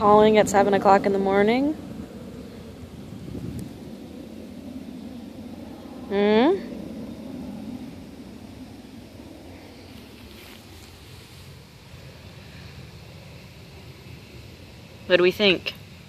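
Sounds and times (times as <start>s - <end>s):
outdoor background rumble: 0.0s - 16.0s.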